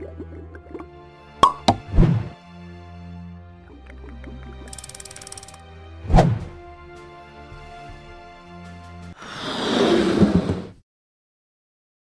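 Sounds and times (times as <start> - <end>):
plops: 0.6 - 1.9.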